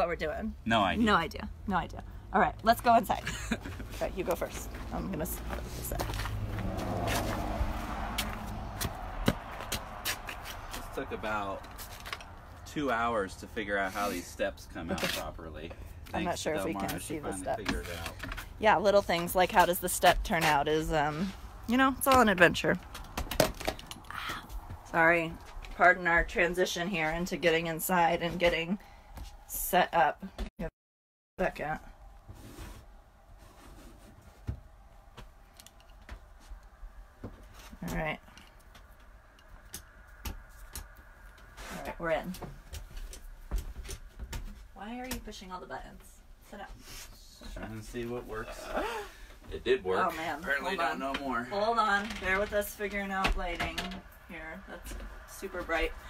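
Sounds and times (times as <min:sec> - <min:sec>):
faint rustling and movement: 0:31.7 - 0:48.5.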